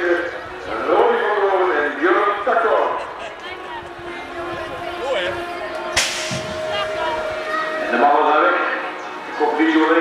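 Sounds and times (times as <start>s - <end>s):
start gate dropping crack: 6.0s - 6.6s.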